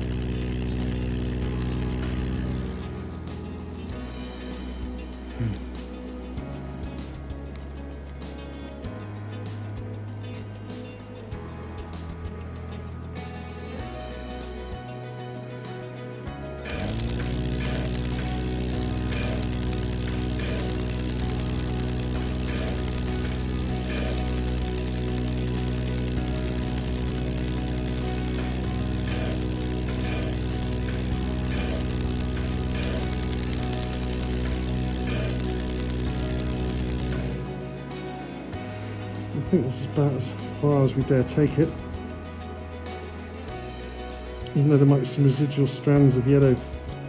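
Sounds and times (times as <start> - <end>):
surgical laser buzzing hum: 0.0 - 6.6, 16.6 - 38.9.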